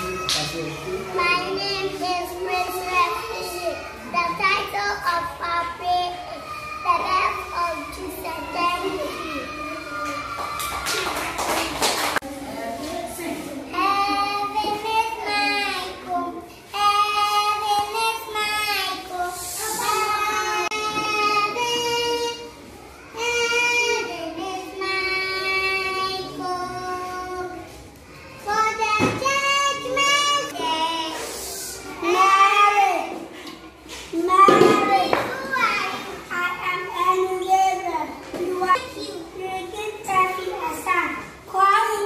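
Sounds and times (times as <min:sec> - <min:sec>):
child singing unaccompanied: 0:01.1 - 0:10.3, 0:13.7 - 0:27.8, 0:28.4 - 0:33.2.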